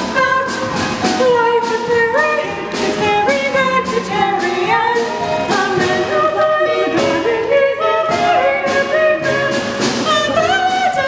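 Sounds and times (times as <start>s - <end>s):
instrumental accompaniment: 0.0s - 11.0s
women singing a duet: 0.0s - 11.0s.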